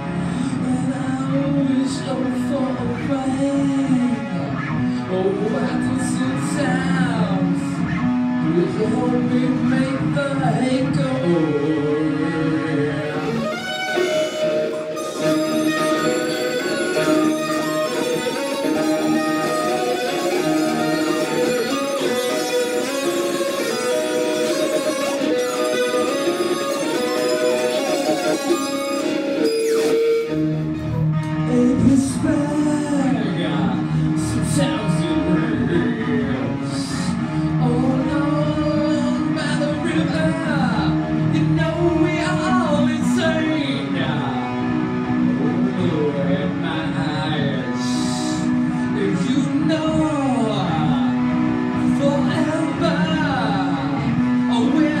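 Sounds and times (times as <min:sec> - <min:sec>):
electric guitar melody: 0:00.0 - 0:55.0
harmonica playing chords: 0:11.2 - 0:55.0.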